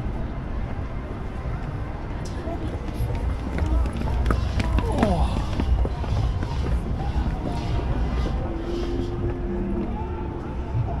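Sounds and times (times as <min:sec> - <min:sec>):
traffic rumble: 0:00.0 - 0:11.0
voices of passers-by: 0:00.0 - 0:11.0
footsteps on stone stairs: 0:02.3 - 0:09.0.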